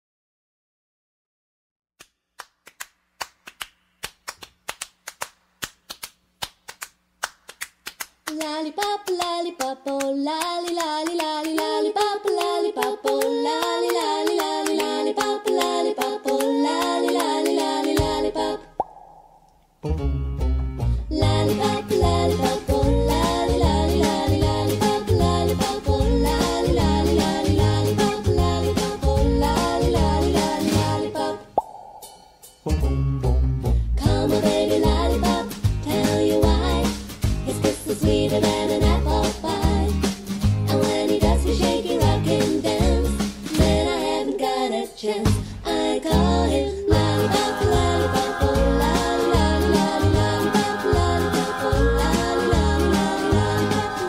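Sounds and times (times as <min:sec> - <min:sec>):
close-harmony singing: 0:08.4 - 0:18.8, 0:21.1 - 0:31.6, 0:34.0 - 0:54.0
finger-in-cheek mouth pop: 0:15.6 - 0:20.1, 0:31.5 - 0:33.9.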